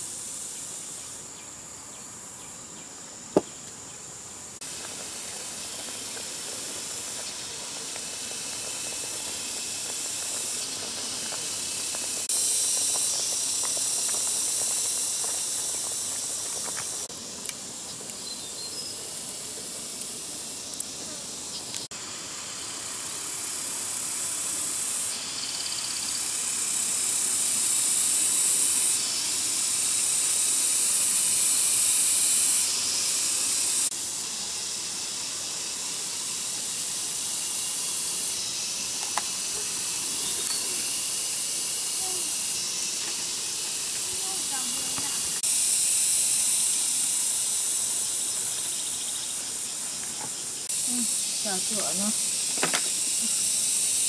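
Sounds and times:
fire crackling: 0.0 - 54.0
forest insects: 0.0 - 54.0
water boiling hard: 4.6 - 54.0.

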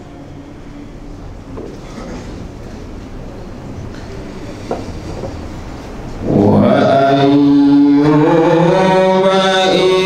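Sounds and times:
man chanting: 6.2 - 10.0.

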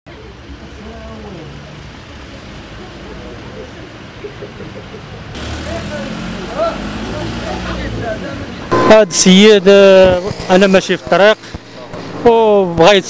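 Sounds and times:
street traffic noise: 0.1 - 13.0
vehicles passing close: 0.1 - 13.0
man's voice: 8.8 - 10.2.

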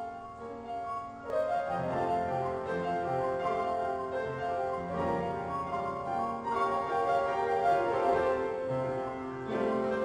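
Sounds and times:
pianos playing together: 0.0 - 10.0.

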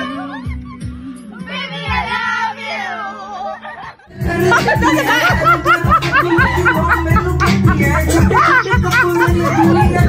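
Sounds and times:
woman singing through loudspeaker: 0.0 - 3.6.

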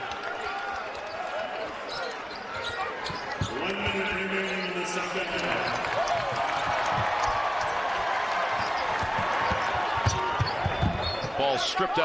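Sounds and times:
arena crowd noise: 0.0 - 12.0
basketball dribbling on hardwood: 6.6 - 7.8, 8.5 - 11.4.

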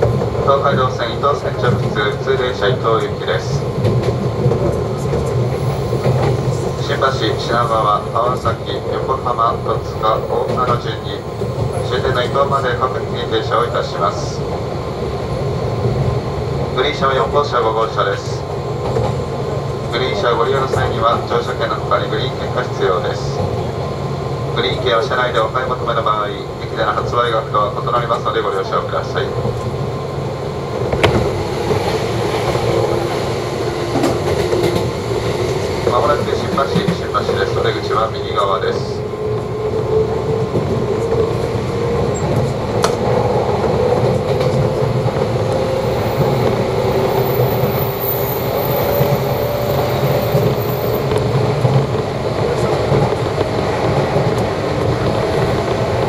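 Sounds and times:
train running rumble: 0.0 - 56.0
public address voice: 6.7 - 14.4, 19.9 - 23.4, 24.6 - 29.4, 35.8 - 39.0.

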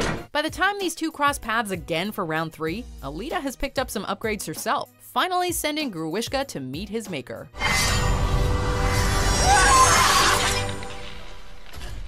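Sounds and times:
loud film score music: 7.6 - 12.0
shattering crash: 7.6 - 12.0.

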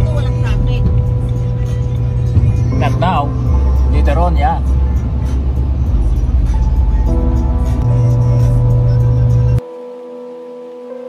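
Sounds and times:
car road and engine rumble: 0.0 - 10.0
music of sustained notes: 0.0 - 11.0.

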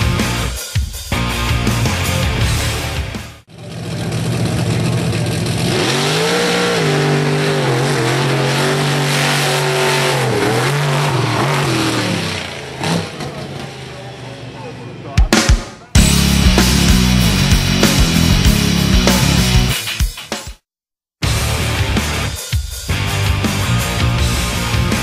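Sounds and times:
monster truck engine revving hard: 3.6 - 14.2, 16.0 - 19.7.

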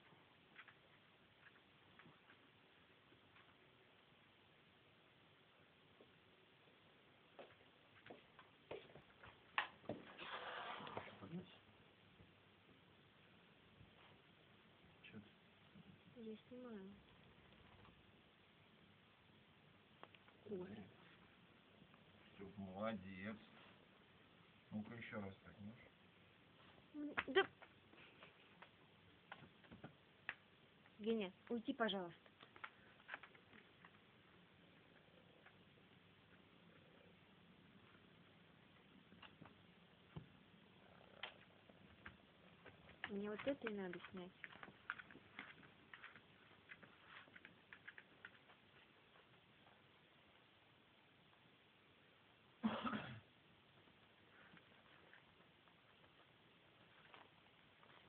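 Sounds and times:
dog's claws clicking on hard floor: 41.2 - 48.8.

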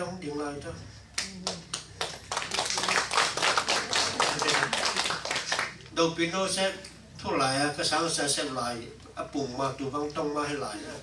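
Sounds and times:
audience applauding: 1.2 - 5.9.

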